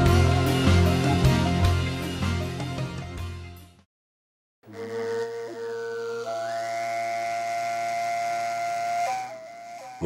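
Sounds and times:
overtone singing with whistling overtone: 0:04.7 - 0:10.0.

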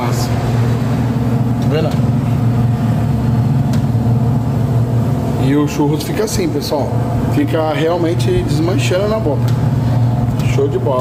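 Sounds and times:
electric machine humming: 0:00.0 - 0:11.0.

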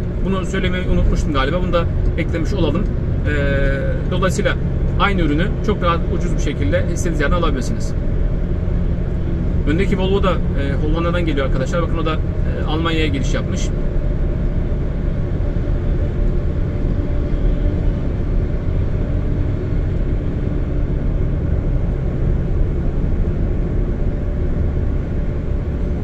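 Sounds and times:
car tyres and engine rumble: 0:00.0 - 0:26.0.

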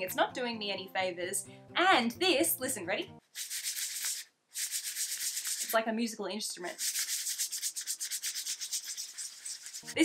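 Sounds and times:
fingers scratching fabric print: 0:06.7 - 0:10.0.

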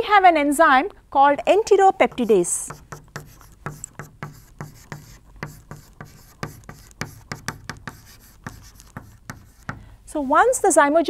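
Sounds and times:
chalk tapping and scratching: 0:01.9 - 0:09.9.

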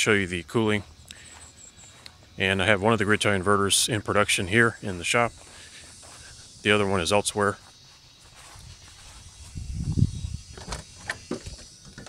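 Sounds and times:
footsteps: 0:01.1 - 0:02.5, 0:04.0 - 0:11.7.

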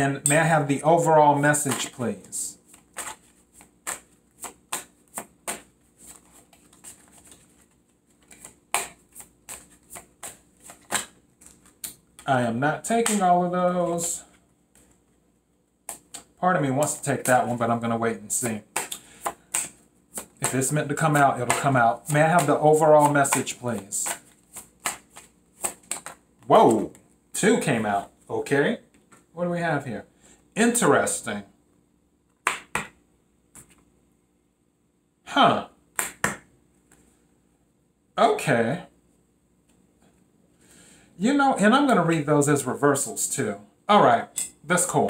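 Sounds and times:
cards being shuffled: 0:01.4 - 0:14.1, 0:15.9 - 0:27.1.

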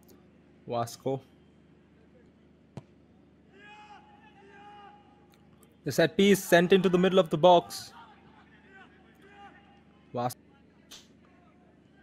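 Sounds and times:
football match ambience: 0:00.0 - 0:12.0
distant high-pitched shouts: 0:03.4 - 0:05.4, 0:07.7 - 0:12.0.

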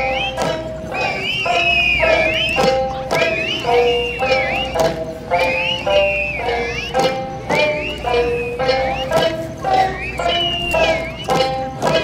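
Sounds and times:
drums struck together: 0:00.0 - 0:12.0
high wavering tones: 0:00.0 - 0:12.0
melody of long stepping notes: 0:00.0 - 0:12.0.

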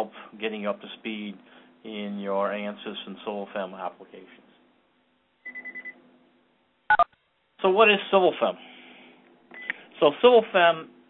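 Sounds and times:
electronic beep: 0:05.5 - 0:06.0.

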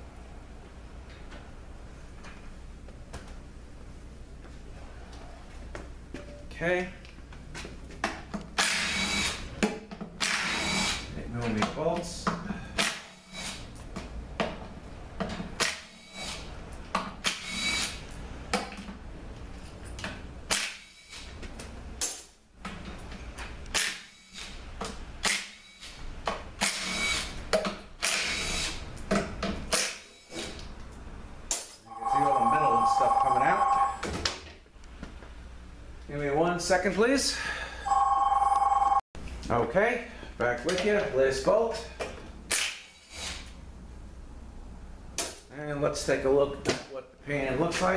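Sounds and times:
telephone two-tone ring: 0:31.9 - 0:34.1, 0:37.8 - 0:39.0.

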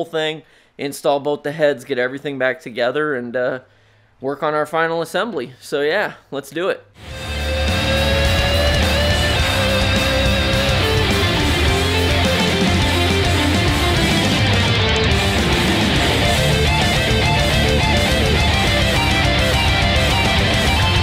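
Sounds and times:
rock music with electric guitar: 0:07.0 - 0:21.0.

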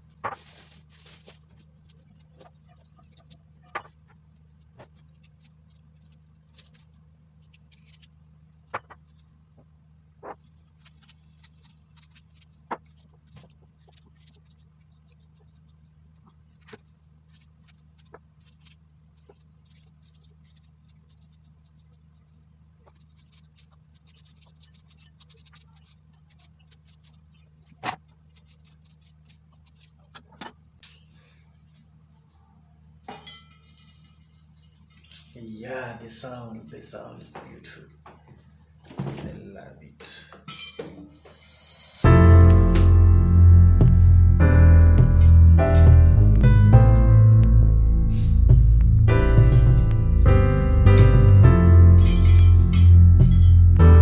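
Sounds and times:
faint low hum: 0:00.0 - 0:41.2, 0:41.8 - 0:54.0
fine crackle of ticks: 0:17.0 - 0:30.1.

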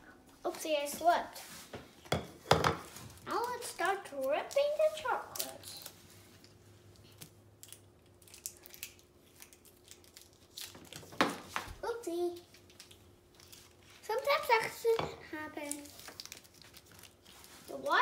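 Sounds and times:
child's voice: 0:00.4 - 0:01.4, 0:03.3 - 0:05.9, 0:11.8 - 0:12.5, 0:14.0 - 0:16.0, 0:17.7 - 0:18.0
wrappers crinkling and tearing: 0:02.9 - 0:14.8, 0:15.5 - 0:18.0.

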